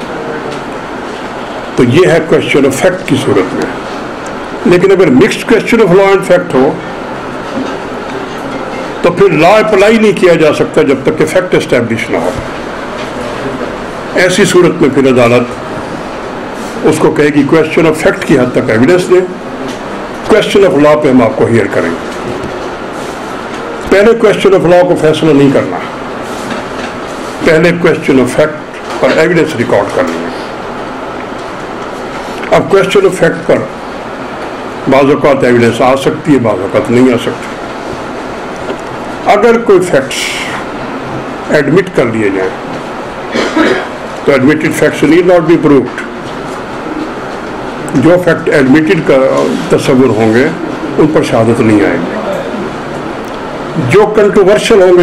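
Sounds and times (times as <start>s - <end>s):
hall hiss with low rumble: 0.0s - 55.0s
man speaking: 1.8s - 3.9s, 4.6s - 7.0s, 8.9s - 12.6s, 13.3s - 15.6s, 16.8s - 19.4s, 20.2s - 22.1s, 23.8s - 26.0s, 27.4s - 30.4s, 32.4s - 33.8s, 34.8s - 37.6s, 39.2s - 40.7s, 41.4s - 42.6s, 43.6s - 46.0s, 47.9s - 52.8s, 53.7s - 55.0s.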